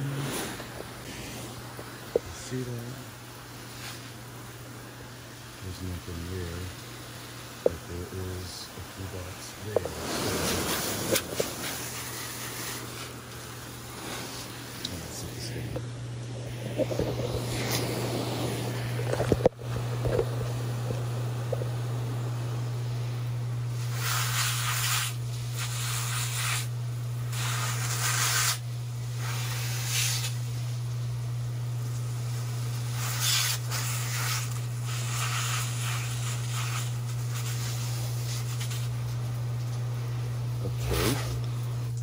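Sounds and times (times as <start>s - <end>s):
hose water spray hissing: 0.0s - 15.8s, 16.4s - 20.2s, 23.7s - 31.0s, 31.8s - 39.4s.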